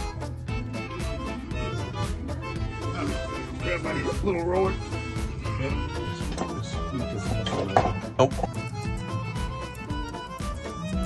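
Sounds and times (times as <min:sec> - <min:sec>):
music with strings and beat: 0:00.0 - 0:11.0.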